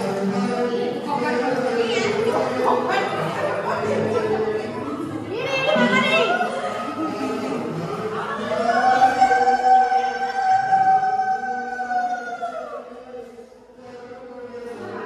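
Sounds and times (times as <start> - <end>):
voices and chatter: 0.0 - 15.0.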